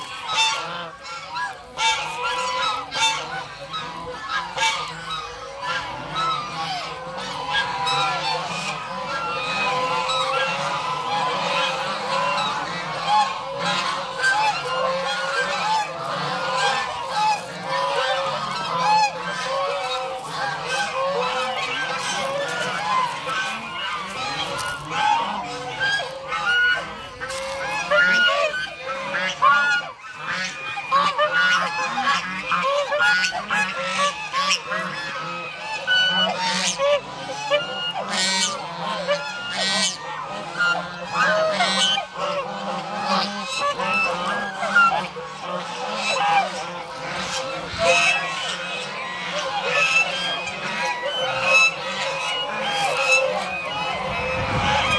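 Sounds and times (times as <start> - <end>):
geese honking: 0.0 - 54.9.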